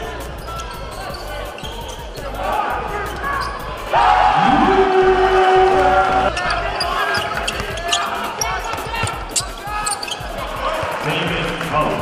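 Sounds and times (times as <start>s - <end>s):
voices in arena: 0.0s - 12.0s
sneakers squeaking on court: 0.3s - 2.4s, 3.1s - 3.8s, 6.3s - 11.0s
basketball bouncing: 6.4s - 8.0s.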